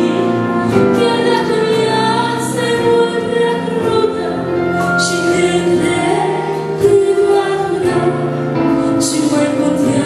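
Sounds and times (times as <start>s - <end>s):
musical accompaniment: 0.0s - 10.0s
woman singing into a microphone: 0.0s - 10.0s.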